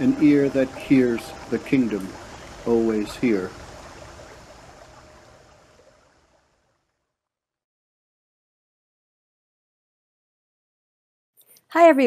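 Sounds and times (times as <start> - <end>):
steady background hiss: 0.0 - 6.2.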